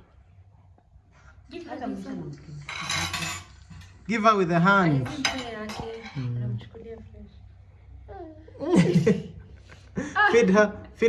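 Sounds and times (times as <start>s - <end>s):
cutlery clinking against a plate: 2.6s - 4.0s.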